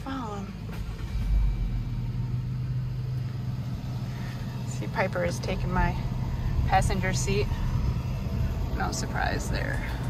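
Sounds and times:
road rumble: 0:00.0 - 0:10.0
vehicle engine hum: 0:00.0 - 0:10.0.

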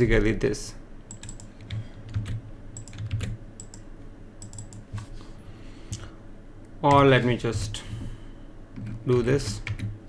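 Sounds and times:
computer keyboard clicks: 0:01.1 - 0:03.8, 0:04.4 - 0:04.9, 0:08.8 - 0:10.0.

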